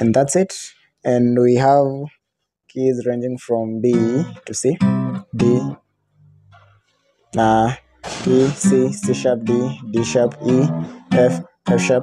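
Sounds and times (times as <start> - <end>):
acoustic guitar chord strummed: 3.9 - 6.7, 7.4 - 12.0.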